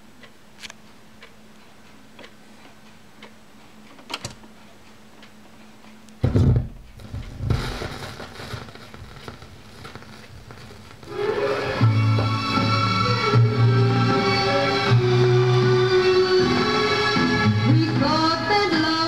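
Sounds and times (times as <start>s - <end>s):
record player hum: 0.0s - 19.0s
stylus dropping thump: 6.2s - 8.6s
vinyl surface crackle and clicks: 6.8s - 12.4s
music playing from record: 7.5s - 19.0s.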